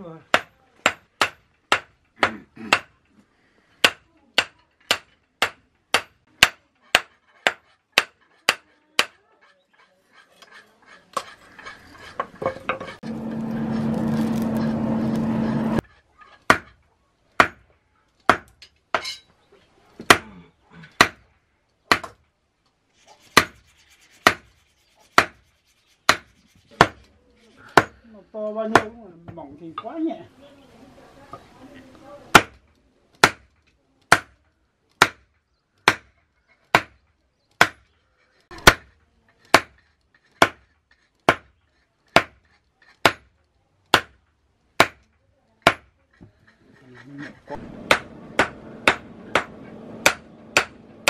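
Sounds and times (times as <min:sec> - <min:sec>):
steady noise with low hum: 0:47.5 - 0:51.0
hammer striking blade on anvil: 0:47.6 - 0:51.0.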